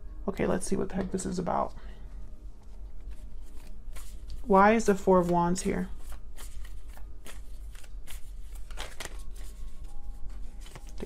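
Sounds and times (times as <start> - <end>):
cards being shuffled: 2.7 - 11.0.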